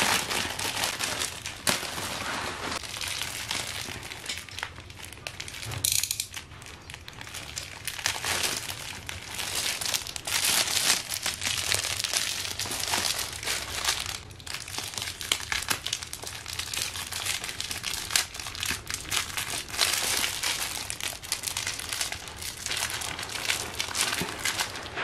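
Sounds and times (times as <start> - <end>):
plastic wrapping film crinkling: 0.0 - 25.0.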